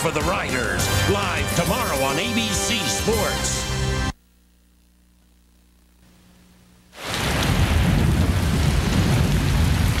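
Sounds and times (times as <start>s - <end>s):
heavy rain: 7.0s - 10.0s.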